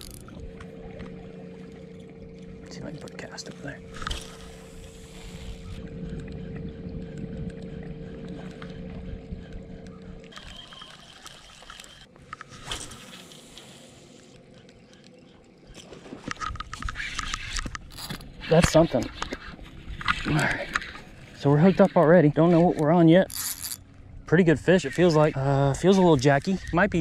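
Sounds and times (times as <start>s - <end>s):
electric trolling motor humming: 0.0s - 27.0s
water and handling noise: 0.0s - 27.0s.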